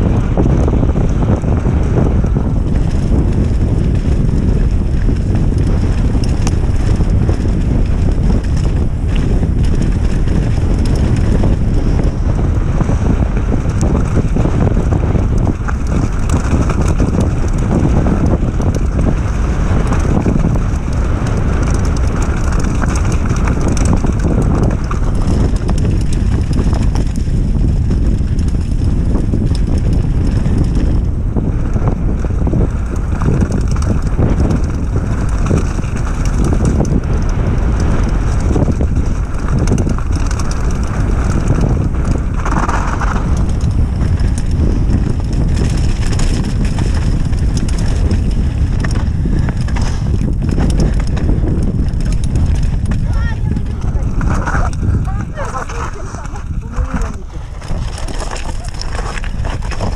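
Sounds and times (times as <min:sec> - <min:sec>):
bike tyres rattling over stones: 0:00.0 - 0:59.9
wind buffeting microphone: 0:00.0 - 0:59.9.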